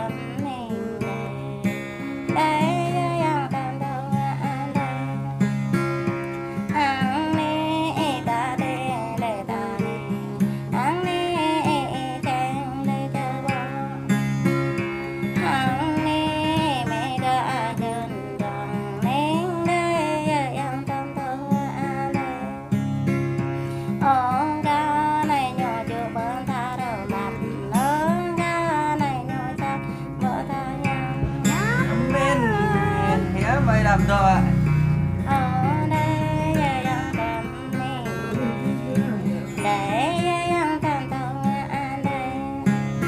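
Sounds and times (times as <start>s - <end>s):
person singing: 0.0s - 5.4s, 6.7s - 14.1s, 15.4s - 22.7s, 23.9s - 43.0s
guitar accompaniment: 0.0s - 43.0s.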